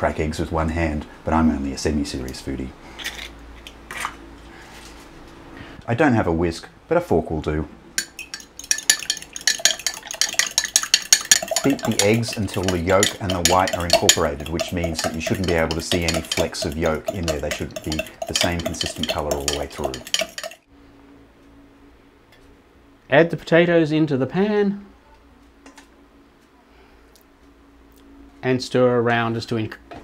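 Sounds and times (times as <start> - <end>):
low steady hum: 0.0 - 30.0
fork beating eggs in glass jug: 8.0 - 20.7.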